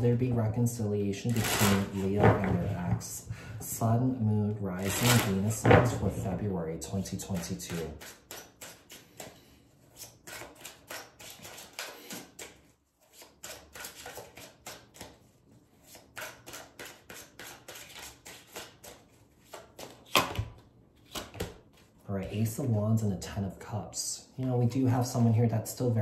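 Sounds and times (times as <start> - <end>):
cards clicking and tapping: 10.3 - 15.2, 15.9 - 21.6.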